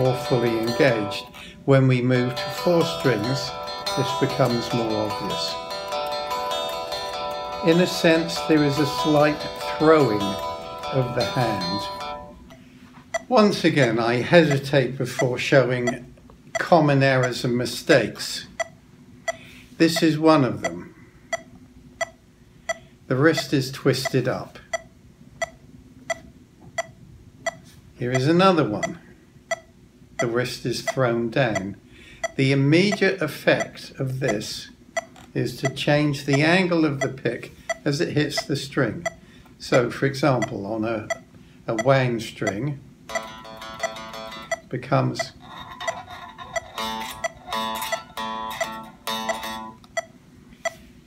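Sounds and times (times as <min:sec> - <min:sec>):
electric guitar string picked: 0:00.0 - 0:12.6, 0:42.5 - 0:49.9.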